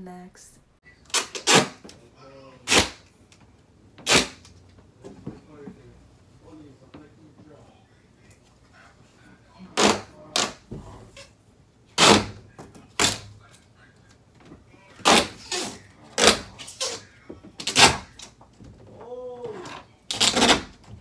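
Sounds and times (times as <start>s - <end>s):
adhesive tape pulled off roll: 4.1s - 4.5s.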